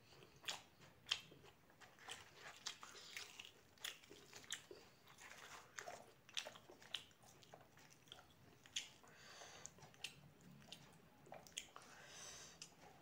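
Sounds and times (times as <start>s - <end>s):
chewing with crisp crunches: 0.0s - 13.0s.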